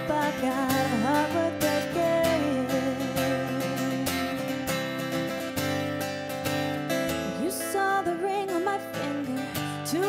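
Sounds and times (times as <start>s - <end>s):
strummed acoustic guitar: 0.0s - 10.0s.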